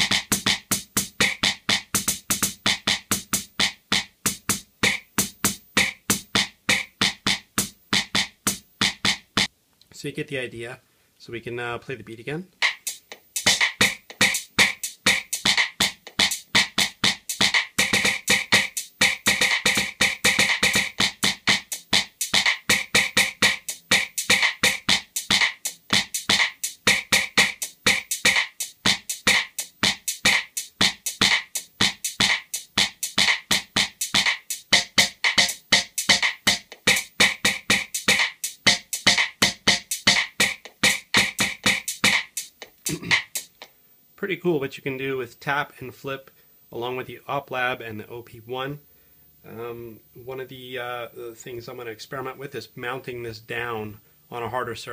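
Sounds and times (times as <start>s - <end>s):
fast electronic drum beat: 0.0s - 9.5s, 12.6s - 43.7s.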